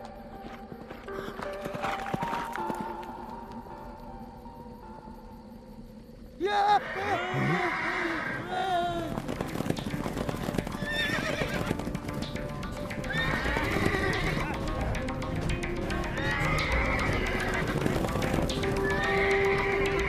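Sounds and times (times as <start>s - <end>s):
horse hooves galloping: 0.0s - 3.7s, 8.3s - 20.0s
background music: 0.0s - 20.0s
horses whinnying: 6.6s - 11.9s, 13.0s - 15.0s, 16.0s - 20.0s.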